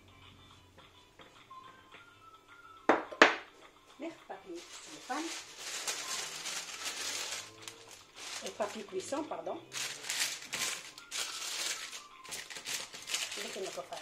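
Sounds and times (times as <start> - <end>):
baking parchment crinkling: 4.5 - 14.0.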